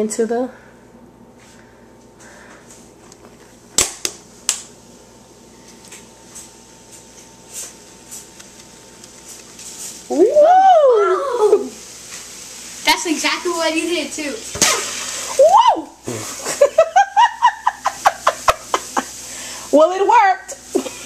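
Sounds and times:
person exclaiming: 10.1s - 11.8s, 15.4s - 16.0s.

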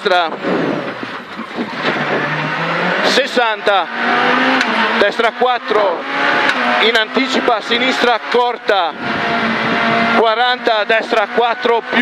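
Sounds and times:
car engine accelerating: 0.3s - 12.0s.

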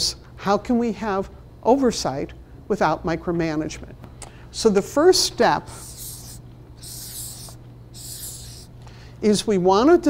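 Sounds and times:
marker pen on paper: 5.7s - 8.7s.

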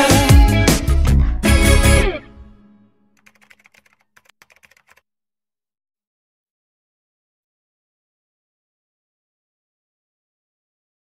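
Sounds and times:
faint rapid clicking: 3.2s - 5.0s.

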